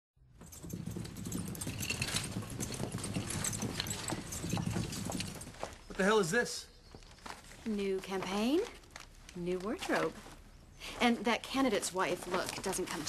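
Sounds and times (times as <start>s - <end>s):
footsteps: 0.4s - 13.0s.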